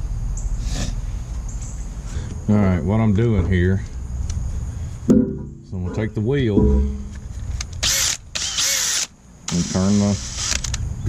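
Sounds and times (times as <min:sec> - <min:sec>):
cordless drill motor whine: 0:07.8 - 0:10.8.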